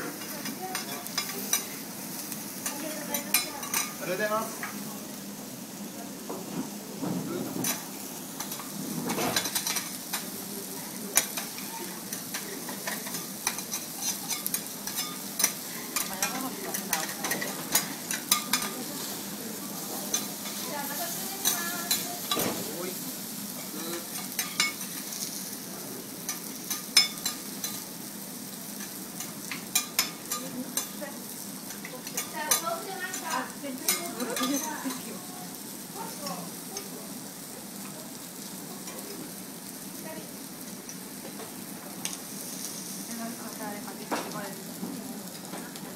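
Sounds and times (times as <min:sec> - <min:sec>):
food sizzling on griddle: 0:00.0 - 0:45.9
metal spatula scraping griddle: 0:11.2 - 0:22.6.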